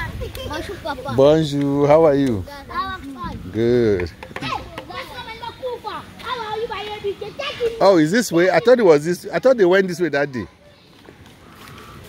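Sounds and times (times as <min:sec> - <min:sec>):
young children talking: 0:00.0 - 0:01.6, 0:02.2 - 0:12.0.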